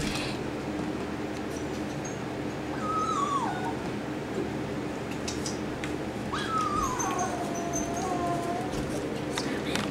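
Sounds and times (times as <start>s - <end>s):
small dog whining: 2.7s - 3.9s, 6.3s - 9.1s.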